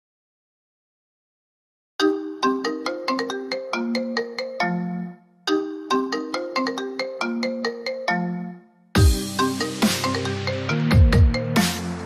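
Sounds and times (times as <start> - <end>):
phone ringtone melody: 2.0 - 11.8.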